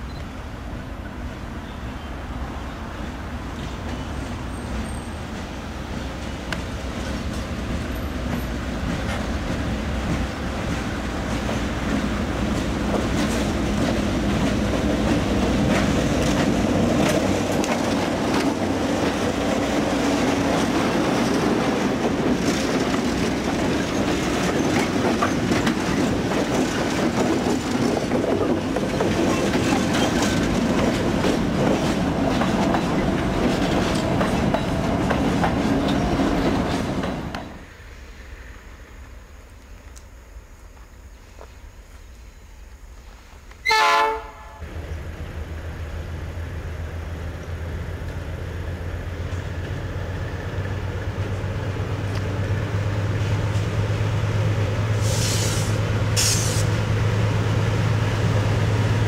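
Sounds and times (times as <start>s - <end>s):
diesel locomotive engine: 0.0s - 59.0s
wheels clattering over rail joints: 6.6s - 37.6s.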